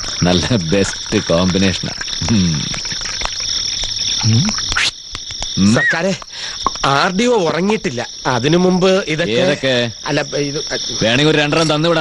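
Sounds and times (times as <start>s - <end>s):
crickets chirring: 0.0s - 12.0s
short falling vocal sound: 2.2s - 2.7s.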